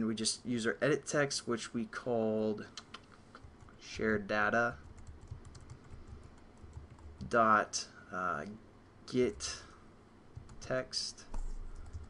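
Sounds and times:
computer keyboard typing: 0:04.8 - 0:07.3, 0:10.4 - 0:10.7, 0:11.3 - 0:12.0.

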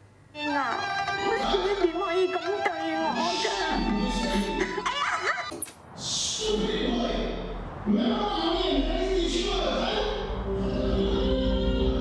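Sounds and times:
noisy hiss: 0:05.5 - 0:11.2.

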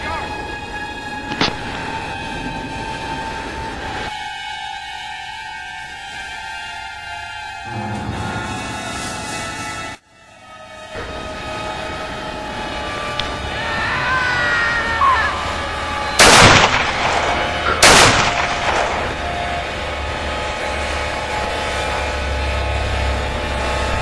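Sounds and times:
background music: 0:00.0 - 0:24.0
loud gunshots: 0:16.2 - 0:19.2.

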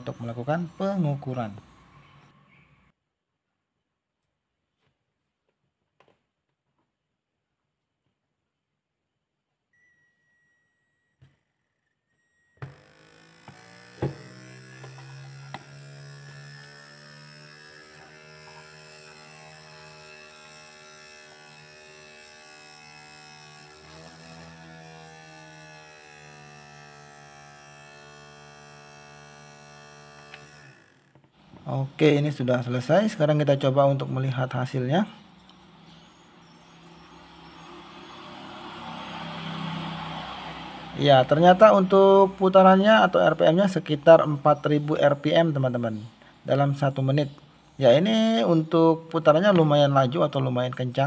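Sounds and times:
electric motor buzz and whine: 0:12.5 - 0:50.5.

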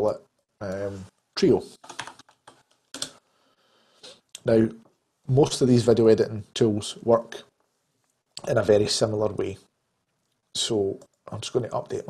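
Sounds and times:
computer keyboard typing clicks: 0:01.8 - 0:03.1.

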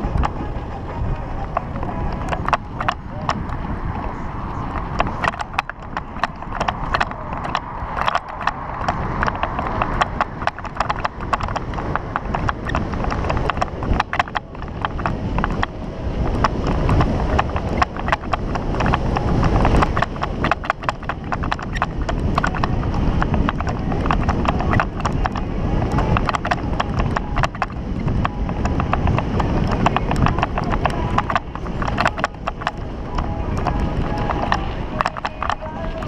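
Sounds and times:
bike frame clicks and knocks: 0:00.0 - 0:00.6, 0:01.2 - 0:36.0
bike tyres rumbling on dirt: 0:00.0 - 0:36.0
wind on microphone: 0:00.0 - 0:36.0.

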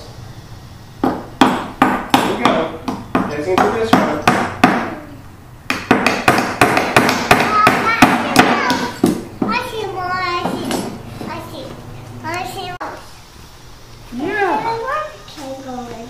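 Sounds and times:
hammer driving nails into wood: 0:05.7 - 0:09.2
child's wordless voice: 0:07.4 - 0:13.0.

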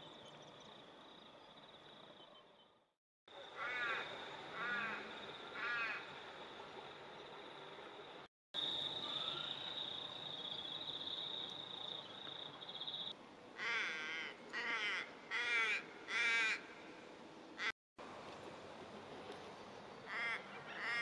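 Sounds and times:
bird cawing: 0:05.6 - 0:06.0, 0:13.6 - 0:16.7.

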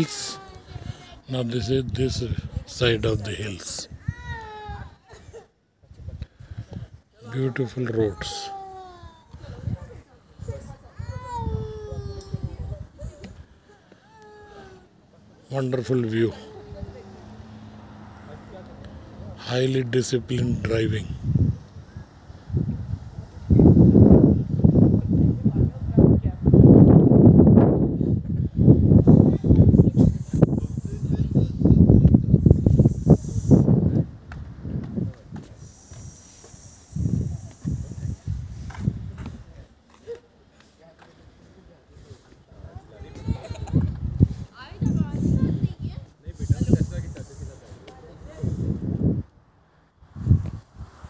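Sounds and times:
wind buffeting microphone: 0:00.0 - 0:03.3, 0:03.9 - 0:05.0, 0:09.0 - 0:13.6, 0:21.0 - 0:39.8, 0:42.5 - 0:51.0.

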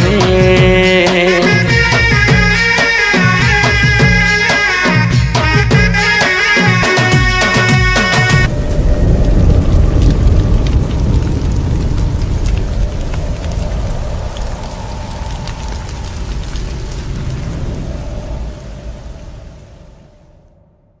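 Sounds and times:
scattered crackles: 0:06.9 - 0:20.0
deep cinematic rumble: 0:08.4 - 0:21.0.

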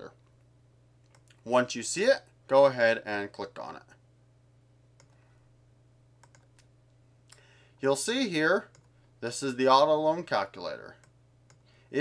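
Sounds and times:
low electrical hum: 0:00.0 - 0:12.0
computer mouse clicks: 0:01.0 - 0:01.4, 0:05.0 - 0:05.2, 0:06.2 - 0:06.7, 0:08.7 - 0:08.9, 0:11.0 - 0:11.7
person speaking: 0:01.3 - 0:04.0, 0:07.8 - 0:11.0
short breath: 0:07.3 - 0:07.8, 0:11.6 - 0:12.0.

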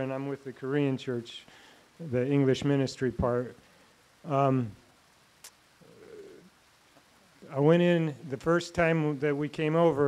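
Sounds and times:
soft click: 0:05.4 - 0:05.6
faint low coo: 0:05.8 - 0:06.5.

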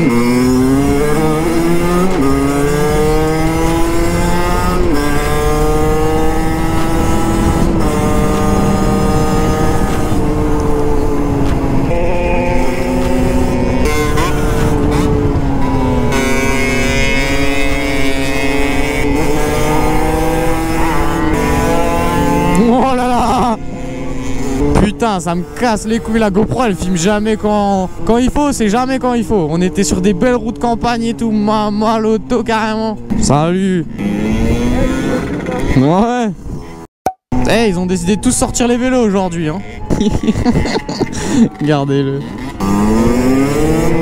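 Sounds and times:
wind rumble: 0:00.0 - 0:28.8
dirt bike engine revving: 0:00.0 - 0:44.0.

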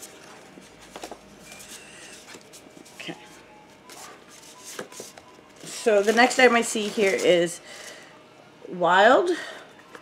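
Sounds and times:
cardboard package rustling: 0:03.9 - 0:07.5.

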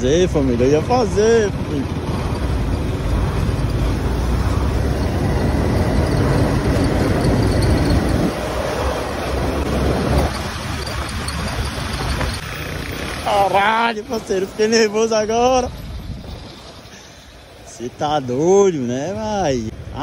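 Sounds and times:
wind noise: 0:00.0 - 0:13.3, 0:14.0 - 0:16.9
motorcycle engine: 0:00.0 - 0:17.7.

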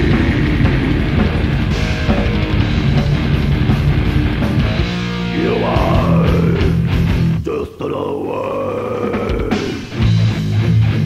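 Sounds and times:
heavy metal music: 0:00.0 - 0:11.0.

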